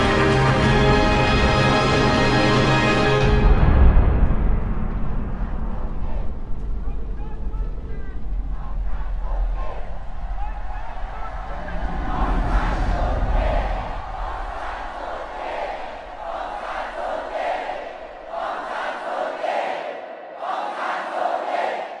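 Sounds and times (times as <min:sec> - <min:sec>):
low rumble: 0:03.2 - 0:18.5
crowd shouting and chanting: 0:08.1 - 0:22.0.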